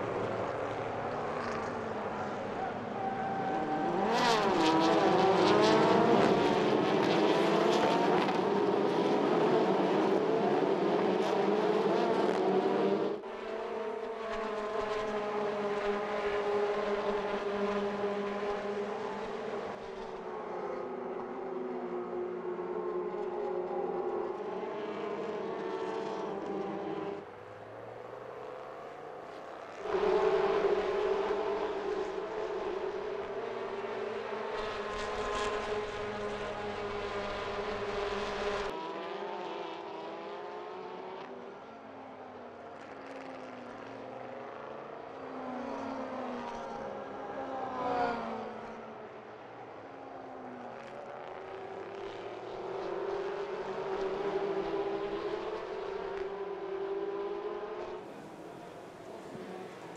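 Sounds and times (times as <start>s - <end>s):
race car engines revving: 0.0s - 59.9s.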